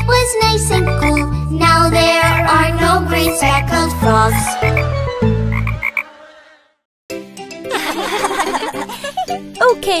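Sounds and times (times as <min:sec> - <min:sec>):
children's song: 0:00.0 - 0:05.1
cartoon frog croaks: 0:05.5 - 0:06.7.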